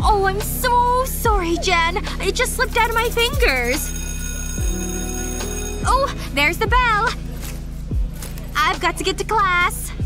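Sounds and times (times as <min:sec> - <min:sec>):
background music with low beat: 0:00.0 - 0:10.0
school bell ringing: 0:02.8 - 0:06.8.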